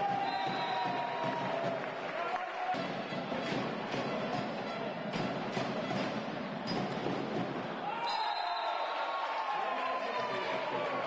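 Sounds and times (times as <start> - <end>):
crowd noise: 0.0 - 11.0.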